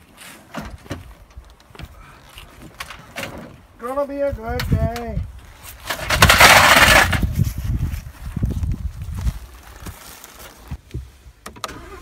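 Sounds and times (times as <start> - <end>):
loud scraping crash: 5.7 - 7.8
clattering and knocks: 5.9 - 7.2.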